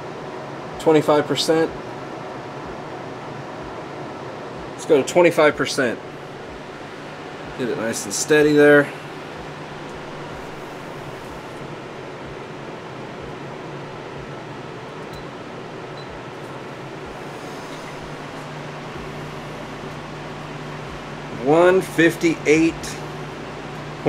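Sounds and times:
constant low hum: 0.0s - 24.0s
fan air hiss: 0.0s - 24.0s.

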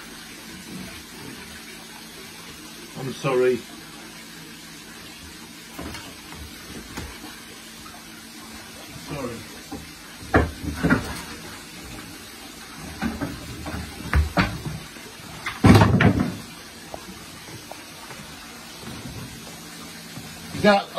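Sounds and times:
hose running water hiss: 0.0s - 20.9s
water splashing in aquarium: 0.0s - 20.9s.

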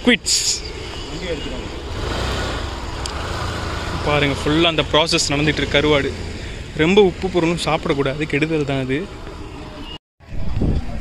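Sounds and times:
motor vehicle passing: 1.3s - 9.5s.

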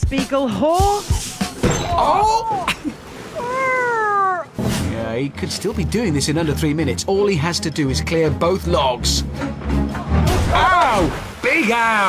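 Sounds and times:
cat meowing: 3.4s - 4.6s.

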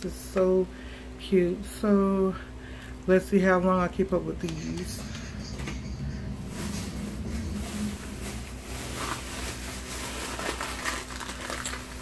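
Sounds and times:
steady low hum: 0.0s - 12.0s
rustling and handling noises: 4.4s - 12.0s.

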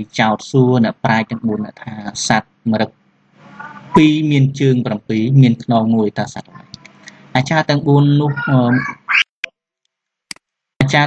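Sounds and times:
person reading aloud: 0.0s - 9.2s.

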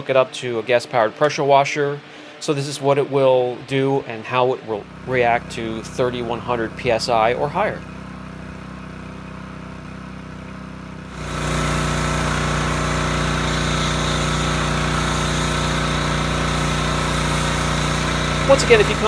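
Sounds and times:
pressure washer engine running: 4.8s - 19.0s
foam spray hiss: 11.1s - 19.0s.

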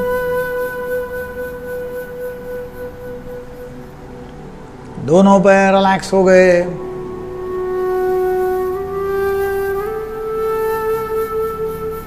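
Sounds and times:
soft relaxation music note: 0.0s - 12.0s.

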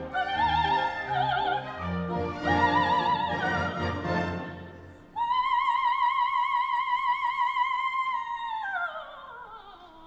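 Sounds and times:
operatic soprano singing: 0.0s - 10.0s.

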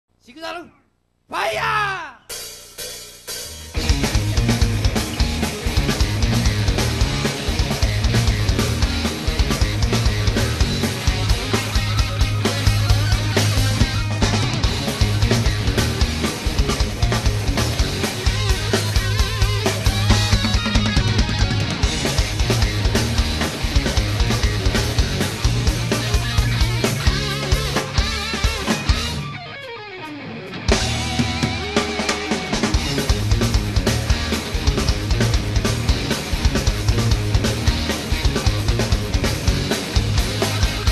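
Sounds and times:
bass: 1.3s - 29.6s, 30.2s - 40.9s
hard rock band playing: 1.4s - 40.9s
drums with cymbals: 2.3s - 29.2s, 30.7s - 40.9s
electric guitars: 3.6s - 40.9s.

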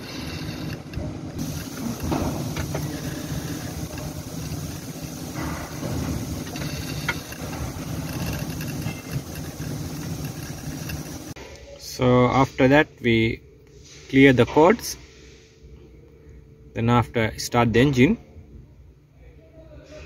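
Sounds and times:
diesel engine idling: 0.0s - 11.4s.

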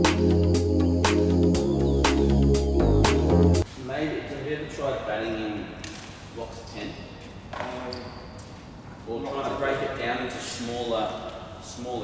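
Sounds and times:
indistinct talk echoing in hall: 3.7s - 12.0s.

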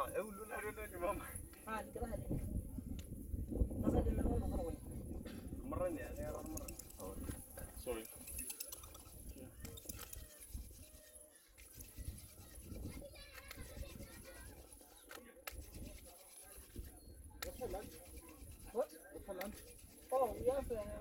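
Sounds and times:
wind on microphone: 0.7s - 14.9s, 15.5s - 21.0s
faint murmured voices: 3.8s - 21.0s
hand drill scraping on wood: 6.0s - 21.0s.

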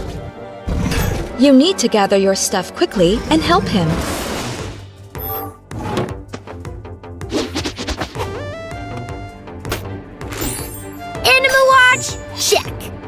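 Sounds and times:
cartoon background music: 0.0s - 13.0s.

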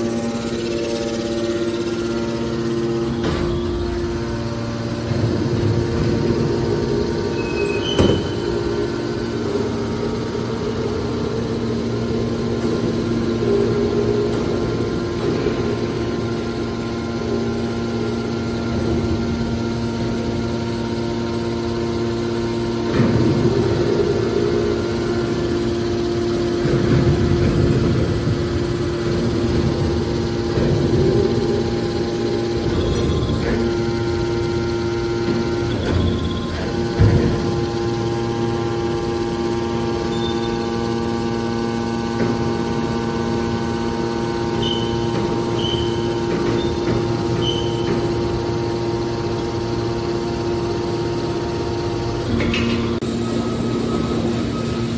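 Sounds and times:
hydraulic power unit humming: 0.0s - 54.9s.

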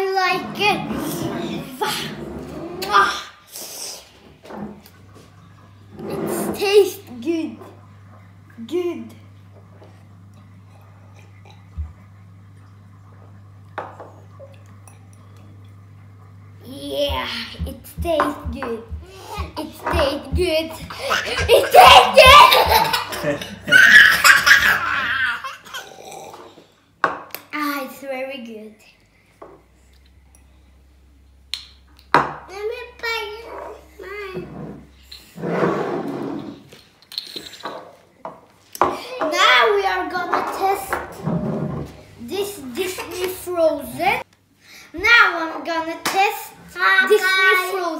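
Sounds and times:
steady low hum: 0.4s - 26.9s
child laughing: 19.1s - 25.9s.

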